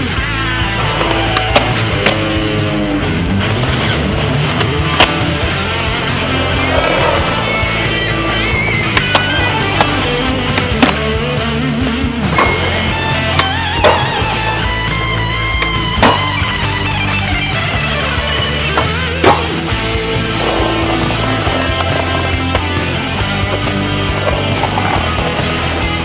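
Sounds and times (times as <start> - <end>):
rock music with guitar: 0.0 - 26.0
skateboard wheels rolling on concrete: 0.0 - 26.0
skateboard popping and landing: 6.1 - 11.2, 12.3 - 14.4, 15.6 - 16.4, 20.3 - 25.8.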